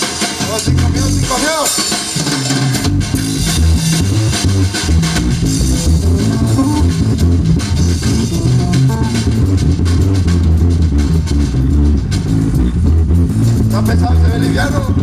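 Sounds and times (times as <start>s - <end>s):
live band playing: 0.0s - 15.0s
person singing: 5.9s - 7.0s.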